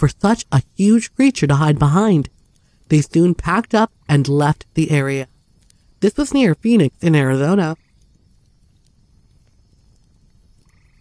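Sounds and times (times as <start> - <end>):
pulsed frog-like croak: 10.6 - 11.0.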